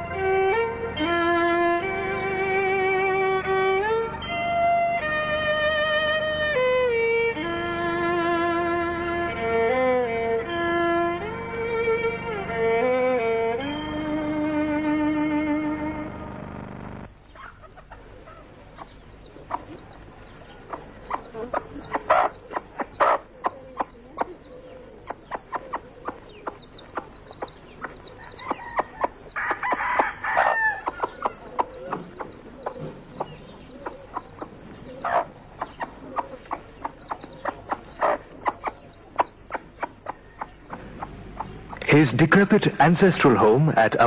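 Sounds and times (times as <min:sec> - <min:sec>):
small birds chirping: 0:00.0 - 0:44.0
chickens clucking: 0:17.3 - 0:44.0.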